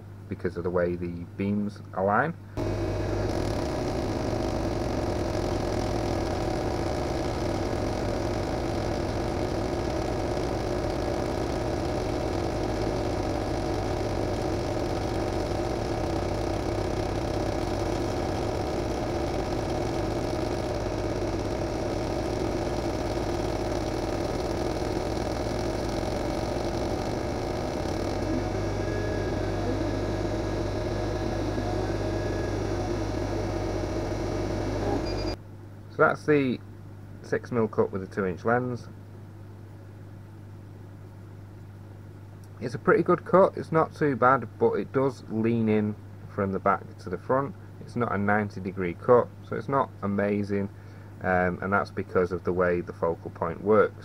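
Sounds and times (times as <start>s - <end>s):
deeper hum: 2.6s - 35.4s
laser cutter mechanical hum: 2.6s - 35.4s.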